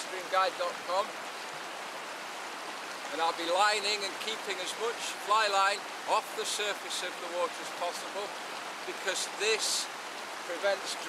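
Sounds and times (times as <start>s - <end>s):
river rushing over rocks: 0.0s - 11.0s.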